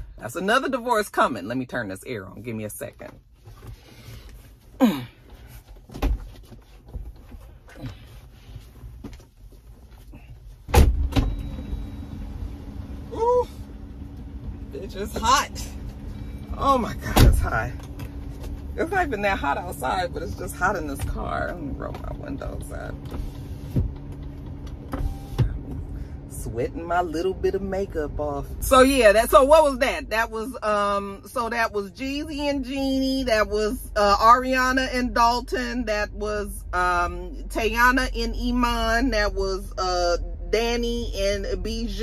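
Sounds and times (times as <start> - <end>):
car engine starting and idling: 0.0 - 42.0
person moving in car seat: 3.0 - 26.0.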